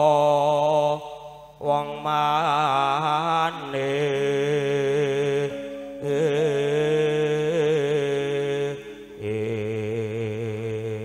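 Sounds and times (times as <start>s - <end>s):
man singing into a microphone: 0.0s - 11.0s
sustained musical accompaniment: 2.1s - 11.0s.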